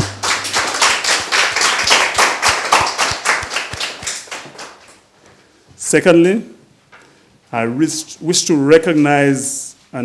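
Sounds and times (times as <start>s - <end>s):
audience applauding: 0.0s - 4.9s.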